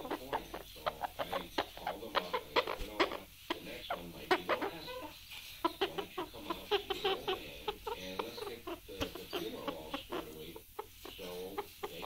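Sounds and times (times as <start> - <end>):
parrot clucking and grunting: 0.0 - 12.0.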